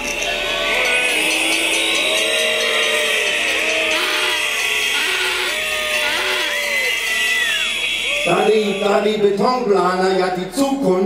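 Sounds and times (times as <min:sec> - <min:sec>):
crowd din: 0:00.0 - 0:10.6.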